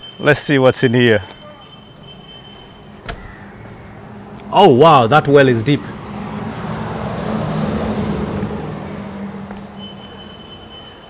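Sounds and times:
vehicle passing by: 1.9 - 10.7.

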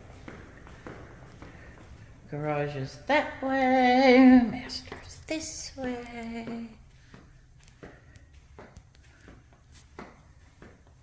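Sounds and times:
footsteps on carpet: 0.0 - 11.0.

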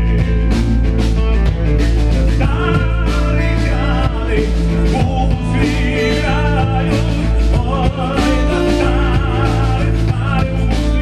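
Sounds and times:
drum strikes: 0.0 - 11.0
live band playing: 0.0 - 11.0.

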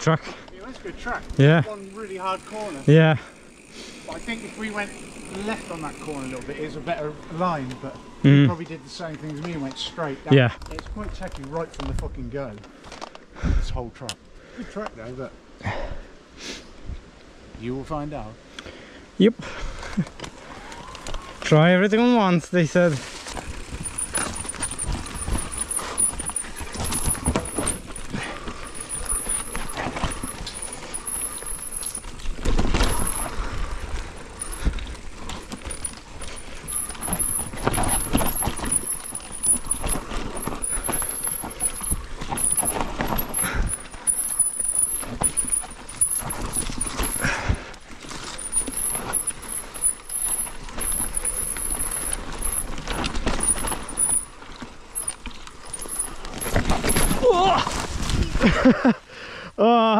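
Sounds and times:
bike rattling and knocking: 0.0 - 9.7, 23.1 - 58.8
tyres rolling on dirt: 0.0 - 13.3, 19.6 - 59.1.

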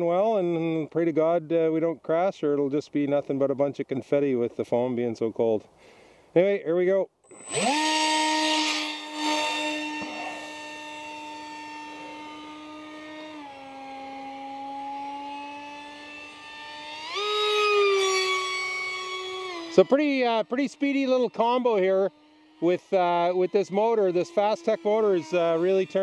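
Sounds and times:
electric motor propeller whine: 7.3 - 26.0.

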